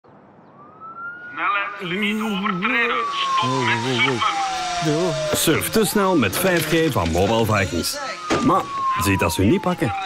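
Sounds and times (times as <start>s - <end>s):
siren wailing: 0.5s - 10.0s
person speaking: 1.4s - 7.9s.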